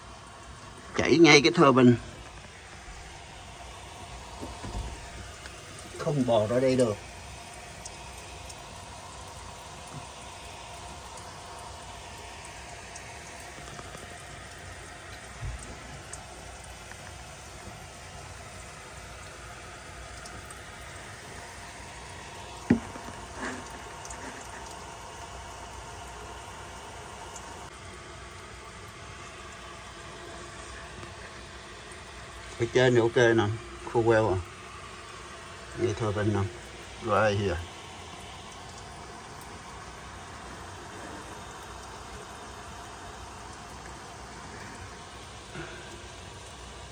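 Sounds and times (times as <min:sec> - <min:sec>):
muffled water rushing from hose: 0:00.0 - 0:46.9.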